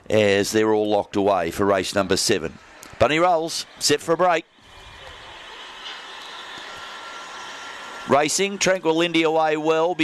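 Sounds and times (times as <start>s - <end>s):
faint high whine: 2.3s - 10.0s.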